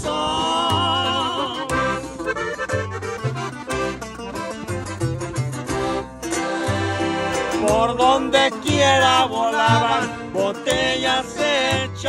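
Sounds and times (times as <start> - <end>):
accordion melody: 0.0 - 12.0
bass line: 0.0 - 12.0.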